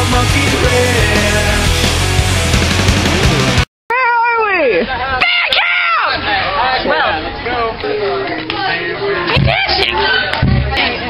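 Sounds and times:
loud rock music: 0:00.0 - 0:03.7
person crying out falling pitch: 0:03.9 - 0:06.0.

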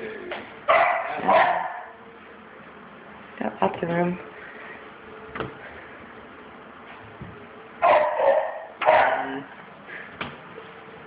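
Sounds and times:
dog barking: 0:00.7 - 0:02.0, 0:07.8 - 0:09.5.

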